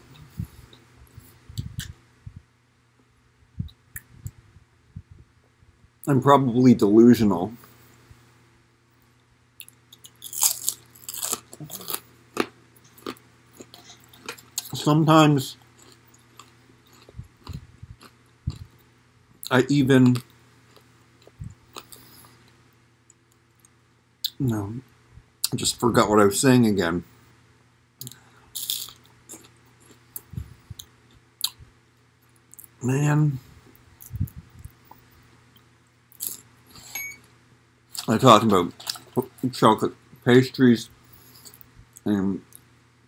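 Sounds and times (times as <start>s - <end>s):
crunching and chewing crispy snack: 9.6s - 18.9s, 20.0s - 22.6s, 28.0s - 31.6s, 35.5s - 36.5s, 37.9s - 39.4s.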